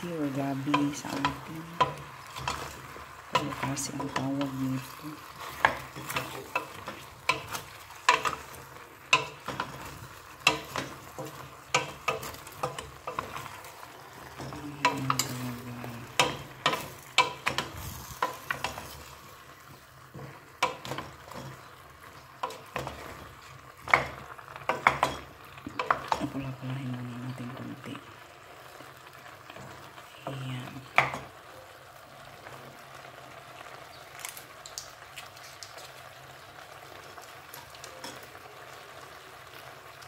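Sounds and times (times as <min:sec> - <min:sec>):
meat sizzling in a pot: 0:00.0 - 0:40.0
wooden spoon scraping a pot: 0:00.2 - 0:26.4.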